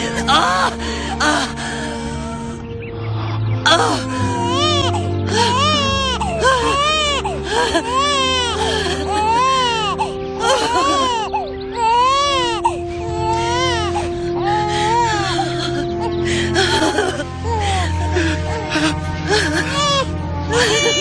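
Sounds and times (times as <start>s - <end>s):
baby crying: 0.0s - 2.6s, 3.7s - 21.0s
soft background music: 0.0s - 21.0s.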